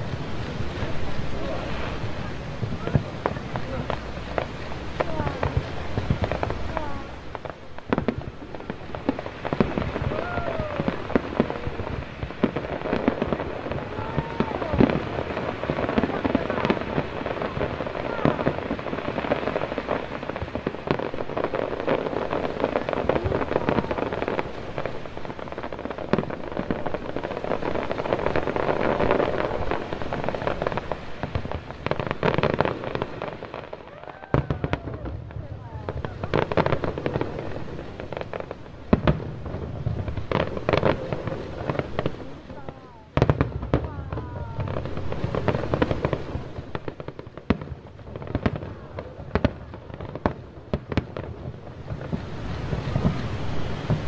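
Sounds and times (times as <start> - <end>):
fireworks bangs and crackling: 0.0 - 54.0.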